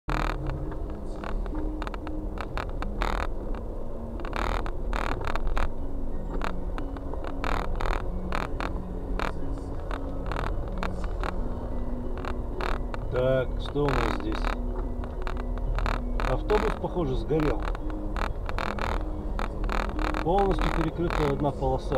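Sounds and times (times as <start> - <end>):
car engine and tyre rumble: 0.1 - 21.9
faint steady tones: 0.1 - 21.9.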